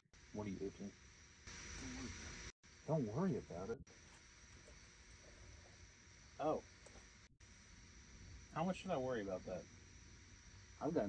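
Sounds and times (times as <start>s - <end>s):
high insect drone: 0.1s - 11.0s
burst of hiss: 0.3s - 11.0s.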